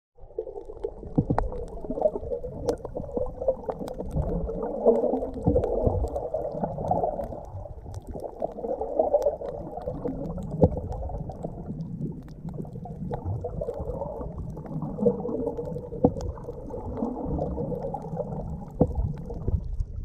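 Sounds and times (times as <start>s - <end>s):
underwater rumbling water: 0.2s - 20.0s.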